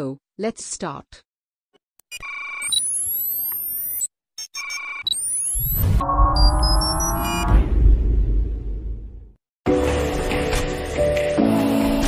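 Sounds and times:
steady electronic beep: 2.1 - 7.9
electronic sweeps rising in pitch: 2.6 - 8.5.

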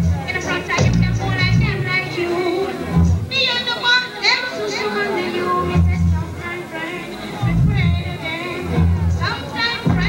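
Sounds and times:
heavy bass: 0.0 - 2.0, 2.9 - 3.3, 5.7 - 6.3, 7.4 - 10.0
reggae music: 0.0 - 10.0.

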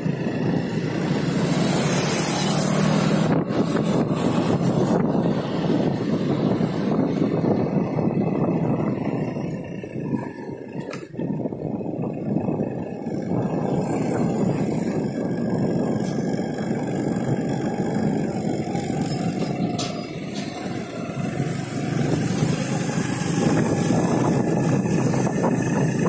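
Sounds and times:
motorcycle engine running: 0.0 - 26.0
wind and road noise: 0.0 - 26.0.

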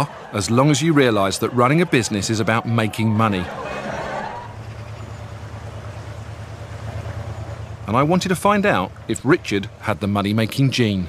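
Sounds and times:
low engine hum: 0.0 - 11.0.

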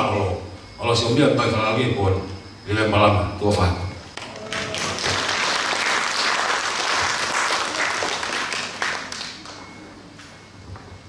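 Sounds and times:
audience applauding: 4.2 - 9.6.

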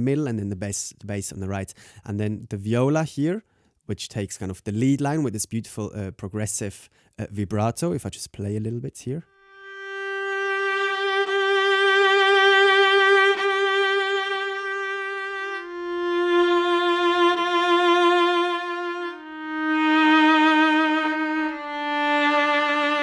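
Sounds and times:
solo viola with vibrato: 9.3 - 23.0.

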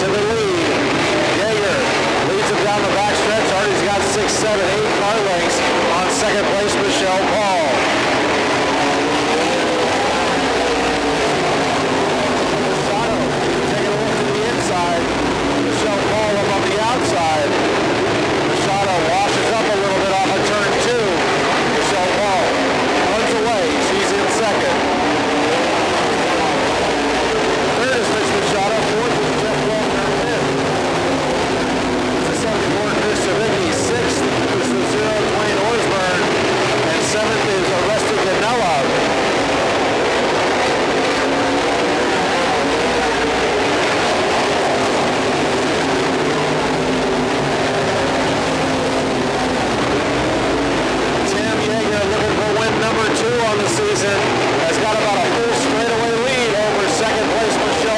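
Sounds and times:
race car engines: 0.0 - 57.9.

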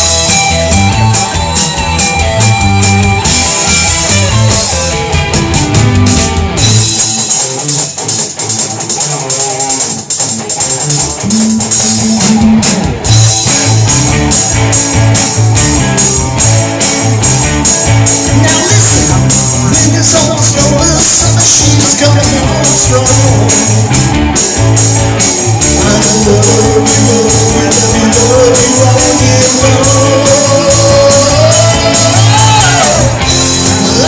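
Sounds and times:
bass: 0.0 - 34.0
drums: 0.0 - 34.0
electric guitars: 0.0 - 34.0.

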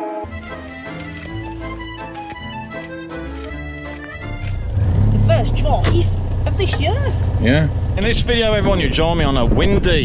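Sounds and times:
music: 0.0 - 5.8
car engine rumble from inside: 4.5 - 9.2.

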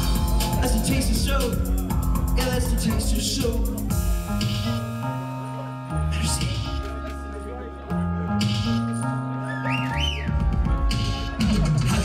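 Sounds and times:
drum beat: 0.0 - 4.8, 10.2 - 12.0
live band music: 0.0 - 7.4
quick up-and-down whistles: 9.4 - 10.4.

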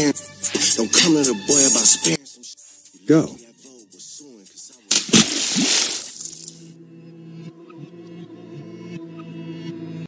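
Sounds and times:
ambient music: 0.0 - 10.0
water splash of diving swimmer: 4.9 - 6.4.

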